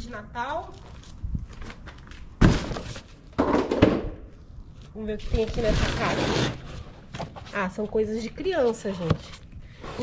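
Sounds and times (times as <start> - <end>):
boxes set down with a thunk: 2.4 - 4.1.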